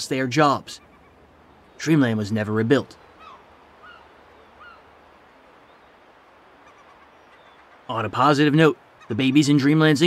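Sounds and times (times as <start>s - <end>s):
low background hiss: 0.0s - 10.0s
faint bird calls: 0.6s - 10.0s.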